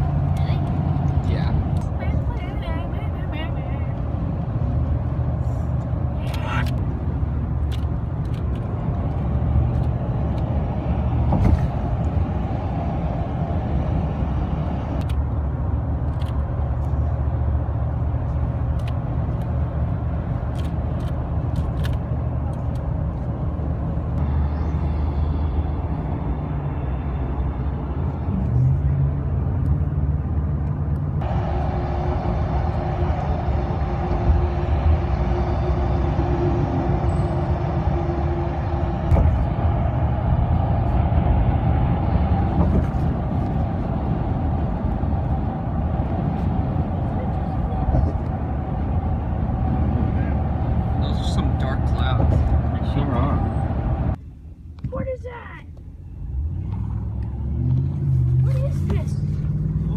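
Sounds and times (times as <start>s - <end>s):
car cabin road and engine noise: 0.0s - 59.9s.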